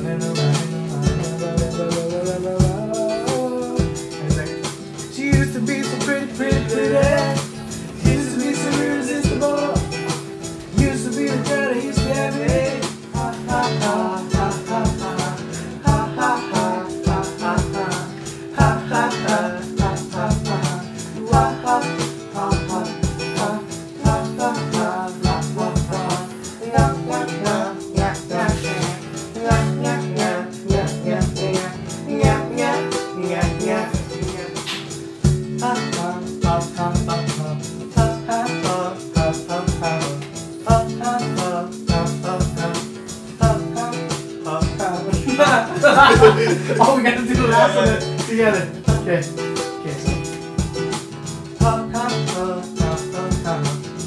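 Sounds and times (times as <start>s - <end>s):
guitar strumming reggae rhythm: 0.0s - 54.0s
person singing: 0.0s - 54.0s.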